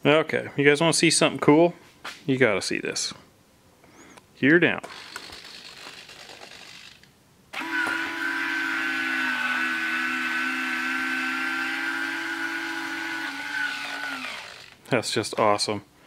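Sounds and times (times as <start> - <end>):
landing gear motor whine: 7.6 - 14.8.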